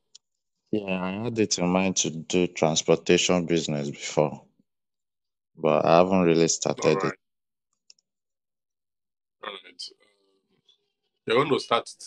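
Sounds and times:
man's voice: 0.8s - 4.4s, 5.7s - 7.2s.

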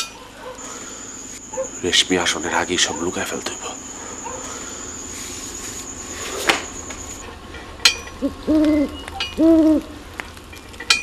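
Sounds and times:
owl hooting: 2.6s - 7.2s, 8.1s - 10.0s.

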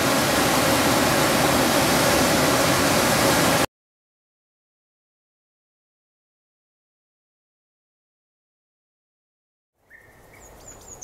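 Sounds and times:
waterfall rushing over rocks: 0.0s - 3.7s.

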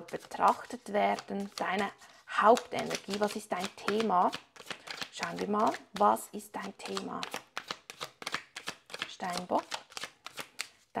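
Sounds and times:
cards being shuffled: 0.0s - 10.8s.

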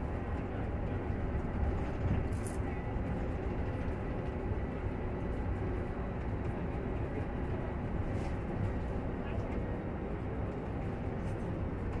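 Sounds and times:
road and tyre rumble in bus cabin: 0.0s - 12.0s.

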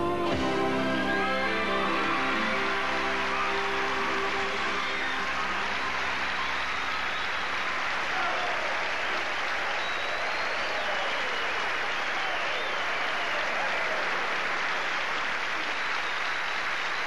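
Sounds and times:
audience applauding: 0.0s - 17.0s
people cheering: 0.0s - 17.0s.

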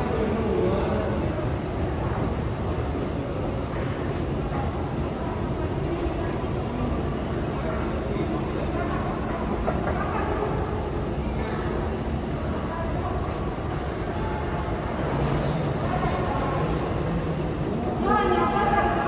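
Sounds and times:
faint echoing voices: 0.0s - 19.0s
metro station rumble and hiss: 0.0s - 19.0s.

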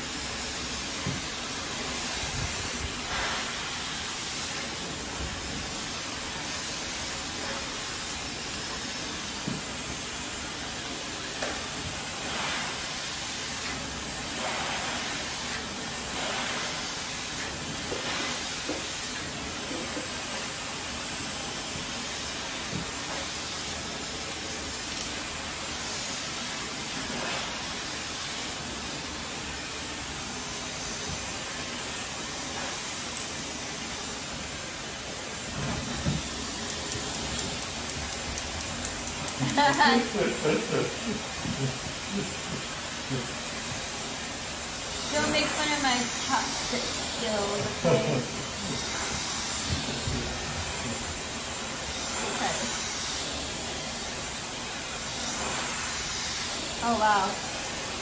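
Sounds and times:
hair dryer blowing: 0.0s - 58.0s.

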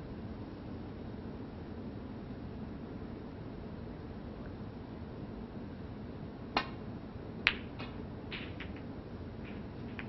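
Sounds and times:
balls clicking together: 7.4s - 10.0s.

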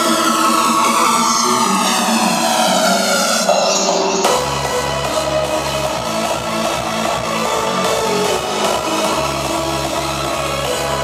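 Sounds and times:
hardstyle dance music: 0.0s - 11.0s
rising synth sweep: 0.0s - 11.0s.

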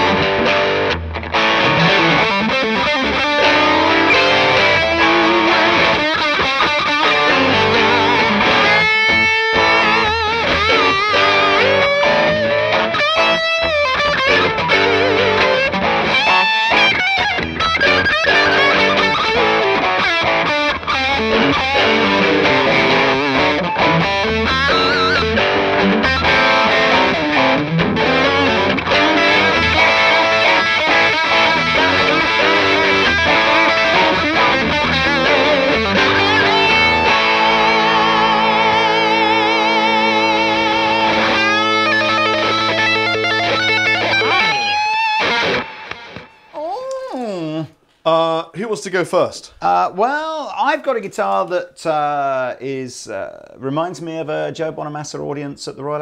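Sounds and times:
electric guitar through overdriven amp: 0.0s - 46.6s.

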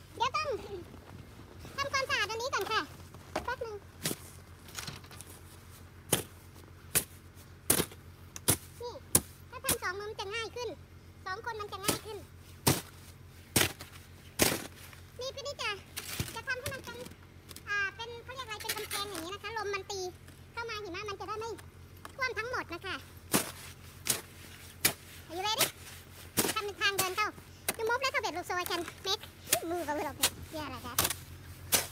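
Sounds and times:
plastic shovel jabbing into snow: 6.1s - 9.8s, 11.8s - 15.0s, 23.3s - 31.9s
plastic shovel scraping packed snow: 23.3s - 27.2s, 28.6s - 31.9s.

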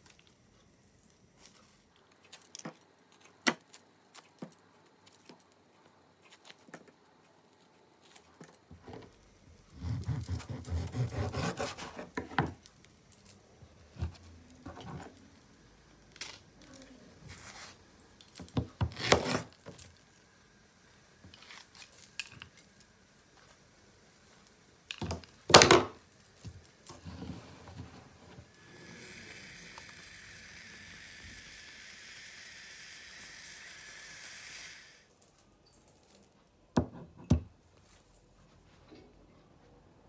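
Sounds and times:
steady hiss: 0.0s - 35.4s.

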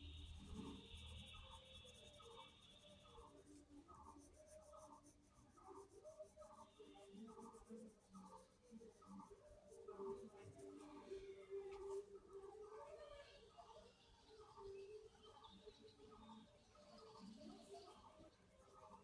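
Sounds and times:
pencil scratching on paper: 0.2s - 11.0s.

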